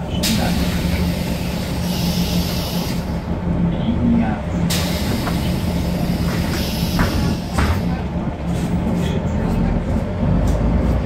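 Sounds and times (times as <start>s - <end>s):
bus diesel engine humming: 0.0s - 11.0s.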